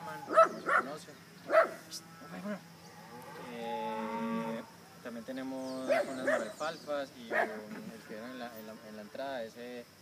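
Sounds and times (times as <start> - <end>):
cow mooing: 2.0 - 4.8.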